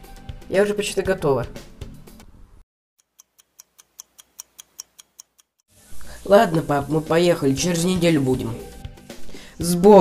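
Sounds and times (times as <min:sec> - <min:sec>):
fast clock ticking: 0:03.0 - 0:05.6.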